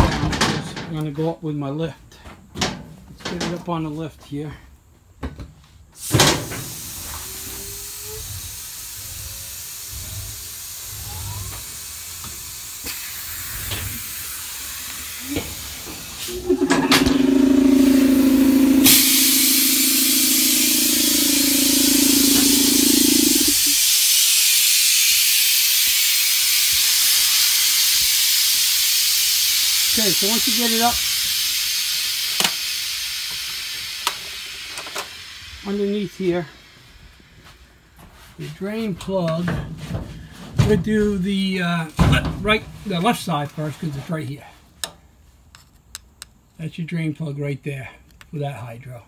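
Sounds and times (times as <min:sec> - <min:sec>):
compressed air hissing: 0:06.6 - 0:35.8
low steady hum: 0:16.3 - 0:23.8.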